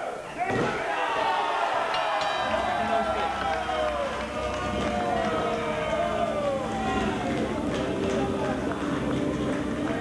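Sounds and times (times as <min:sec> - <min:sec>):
spectators shouting: 0:00.0 - 0:09.0.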